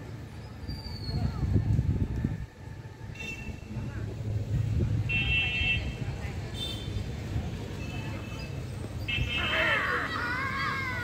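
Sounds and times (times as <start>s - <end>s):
children shouting: 9.3s - 11.0s.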